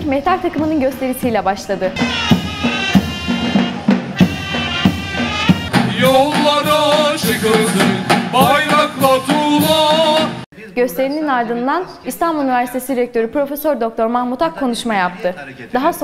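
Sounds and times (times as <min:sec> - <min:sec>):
shrill wavering reed pipe melody: 0:02.0 - 0:06.4
bass drum strokes: 0:02.0 - 0:10.4
band singing in chorus: 0:02.0 - 0:10.5.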